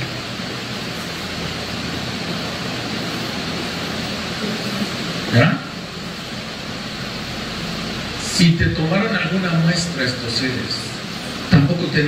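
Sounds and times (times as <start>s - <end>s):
rushing room noise: 0.0s - 12.0s.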